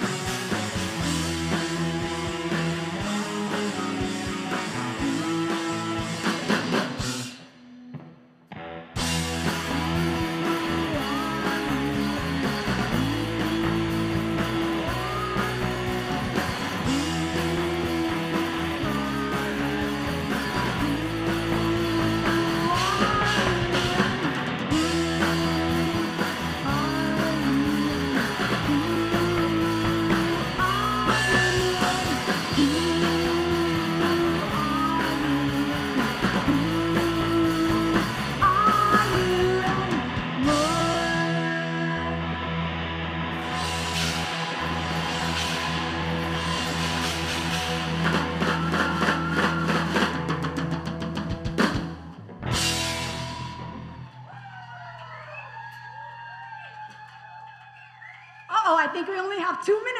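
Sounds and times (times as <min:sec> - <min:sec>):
live rock band playing: 0:00.0 - 0:55.1
woman singing: 0:09.6 - 0:42.2.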